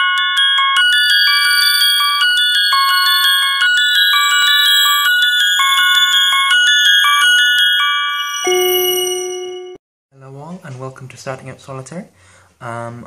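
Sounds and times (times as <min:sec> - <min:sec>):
bell-like chime melody: 0:00.0 - 0:09.8.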